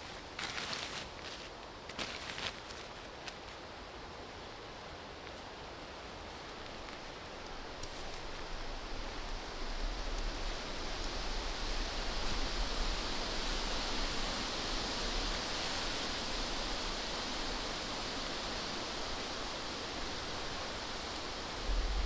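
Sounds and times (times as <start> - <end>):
rushing outdoor ambience: 0.0 - 22.0.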